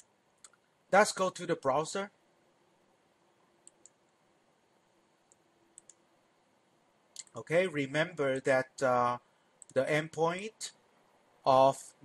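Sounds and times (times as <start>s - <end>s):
faint steady hum: 0.0s - 12.0s
computer mouse clicks: 3.6s - 4.0s, 5.3s - 6.0s.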